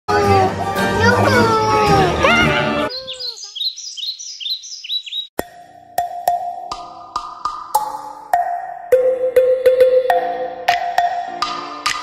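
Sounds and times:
music: 0.1s - 2.9s, 5.8s - 12.0s.

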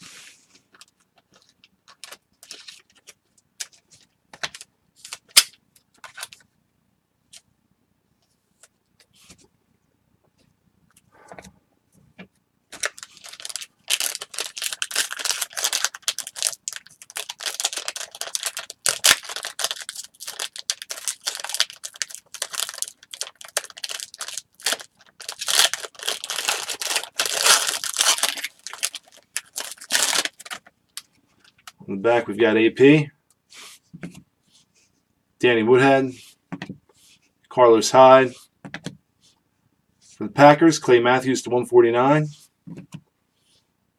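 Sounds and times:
wrapper tearing and crinkling: 12.8s - 30.7s.

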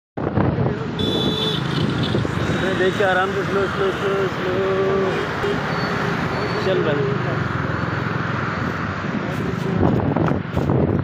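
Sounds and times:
vehicle engine and road noise: 0.2s - 11.0s.

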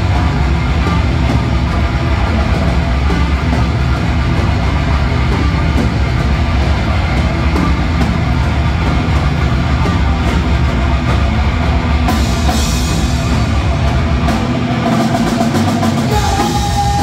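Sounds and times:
bass guitar: 0.0s - 17.0s
distorted electric guitars: 0.0s - 17.0s
drum kit: 0.0s - 17.0s.

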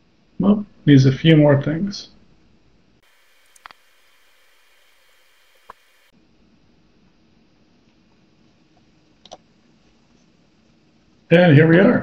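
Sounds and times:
faint hiss: 3.0s - 11.5s
soft clicks: 3.3s - 6.1s.

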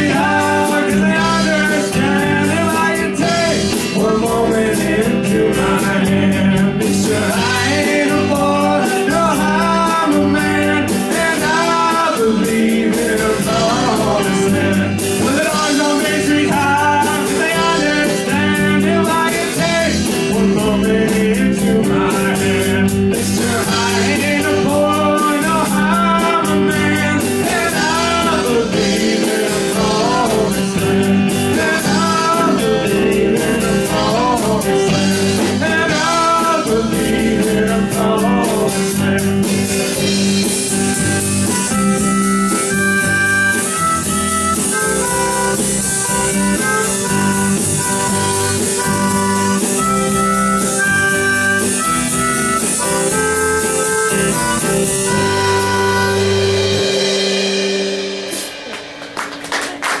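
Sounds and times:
man singing: 0.0s - 43.8s
live rock band playing: 0.0s - 60.0s
harmonica playing: 6.9s - 37.4s, 39.6s - 57.8s.

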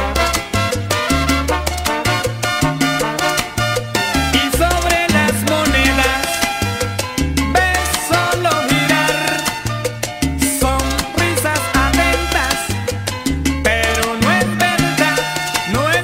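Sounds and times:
salsa band playing: 0.0s - 16.0s.

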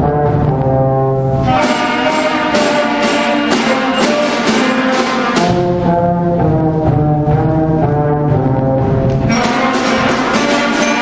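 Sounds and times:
concert band playing: 0.0s - 11.0s
held low brass notes: 0.0s - 11.0s.

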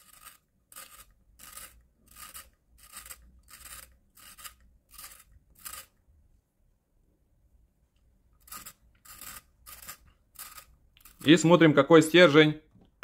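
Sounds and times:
pencil sharpener shaving wood: 0.0s - 6.0s, 8.4s - 11.4s.

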